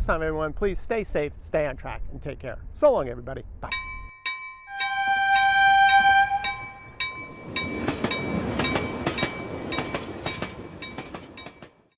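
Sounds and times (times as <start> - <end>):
railroad crossing bell ringing: 3.7 - 11.9
train horn: 4.7 - 6.8
passing train rumble and clatter: 4.8 - 11.9.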